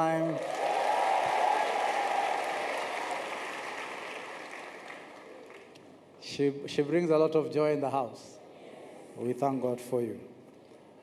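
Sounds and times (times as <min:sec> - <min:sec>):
congregation applauding: 0:00.0 - 0:05.8.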